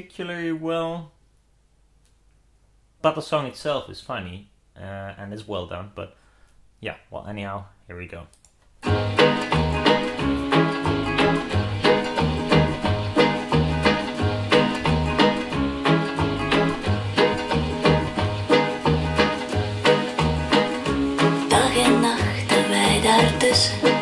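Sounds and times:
song over loudspeakers: 8.9s - 24.0s
pulsing bass line: 9.0s - 22.1s.

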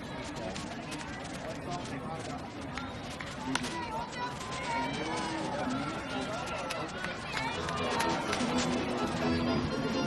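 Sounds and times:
spectators' voices: 0.0s - 10.0s.

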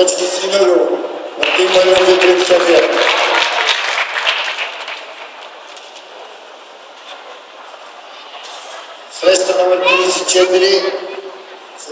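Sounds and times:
audience applause: 1.4s - 5.7s
crowd hubbub: 3.0s - 11.9s.

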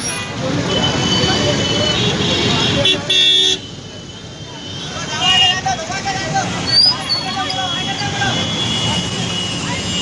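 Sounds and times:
motorcycle and scooter engines: 0.0s - 10.0s.

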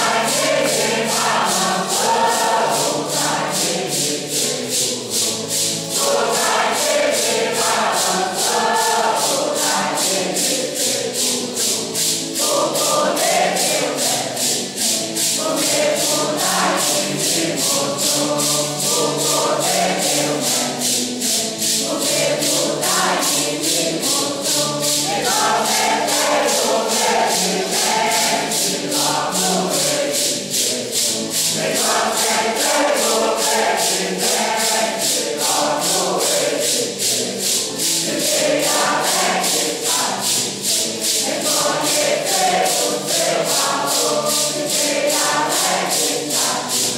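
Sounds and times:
congregation singing a hymn: 0.0s - 46.9s
maracas shaken on a beat: 0.0s - 46.9s.

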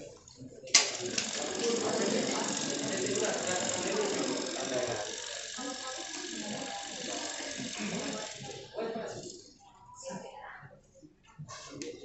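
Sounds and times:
ratchet-like rasping clatter: 0.8s - 9.5s
voices talking: 0.8s - 10.0s.

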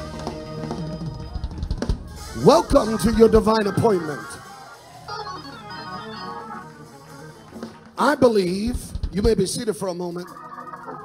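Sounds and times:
drum hits: 0.0s - 3.9s, 7.4s - 9.6s
organ chords: 0.0s - 9.6s.

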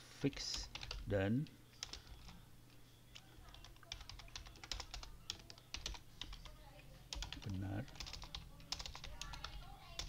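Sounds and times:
typing on computer keyboard: 0.5s - 1.0s, 1.8s - 2.4s, 3.4s - 6.5s, 7.1s - 10.0s.

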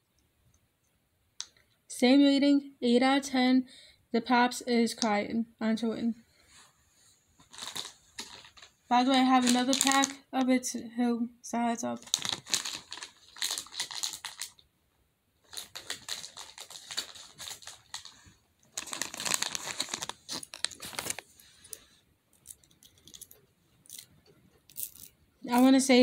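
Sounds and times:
faint plastic handling sounds: 6.3s - 10.2s, 12.0s - 14.7s, 15.4s - 25.2s
plastic pop tubes crackling: 7.4s - 10.2s, 12.0s - 14.7s, 15.4s - 25.8s.

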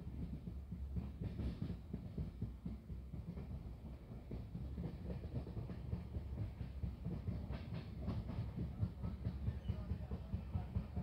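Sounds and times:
train wheels rumbling on track: 0.0s - 11.0s.

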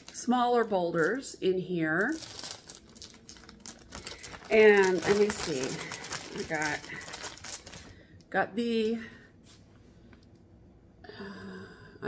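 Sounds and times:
plastic bag crinkling: 0.0s - 8.2s.

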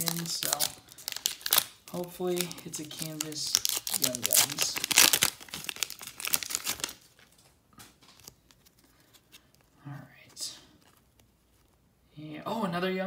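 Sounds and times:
foil wrapper crinkling and tearing: 0.0s - 9.8s.

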